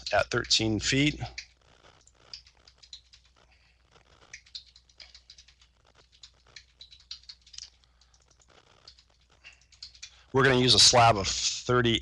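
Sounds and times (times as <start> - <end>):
faint keyboard typing: 0.0 - 11.2.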